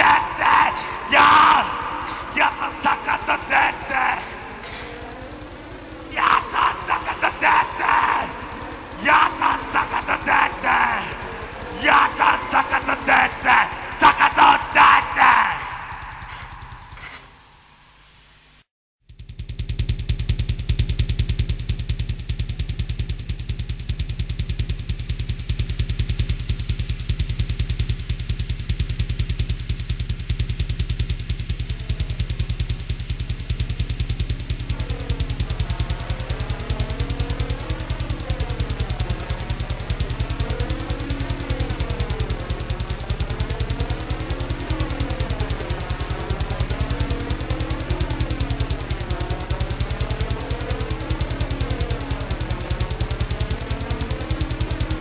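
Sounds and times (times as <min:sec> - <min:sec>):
drum machine beat: 0:00.0 - 0:17.0, 0:19.1 - 0:55.0
heavy bass pulse: 0:00.0 - 0:17.1, 0:19.0 - 0:55.0
sweeping pitch synth sound: 0:31.8 - 0:55.0.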